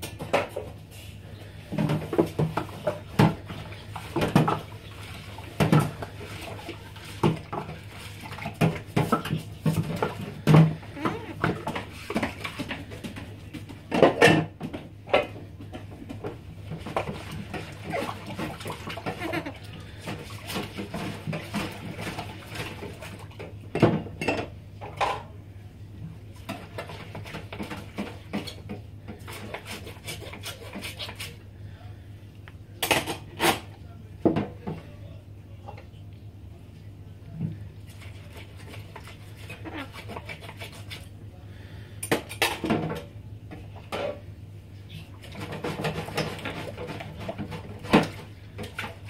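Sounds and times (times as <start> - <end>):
dishes being scrubbed: 0.0 - 14.5, 15.2 - 23.4, 26.4 - 31.4, 37.9 - 49.0.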